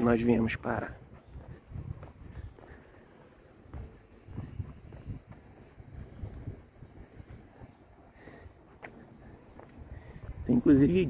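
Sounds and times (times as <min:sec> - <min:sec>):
street ambience: 0:00.0 - 0:11.0
wind rumbling on microphone: 0:00.0 - 0:11.0.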